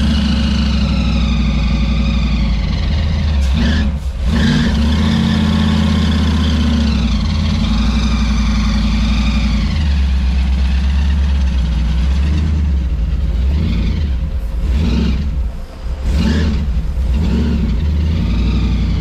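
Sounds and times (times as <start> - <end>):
loud car engine idling: 0.0 - 19.0.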